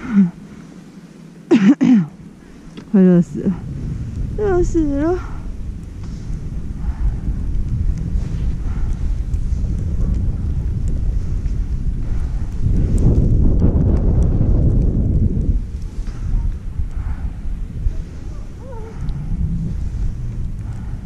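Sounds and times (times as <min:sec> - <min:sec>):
wind rumbling on microphone: 0:00.0 - 0:21.0
skis sliding on snow: 0:06.0 - 0:06.6, 0:07.7 - 0:16.4.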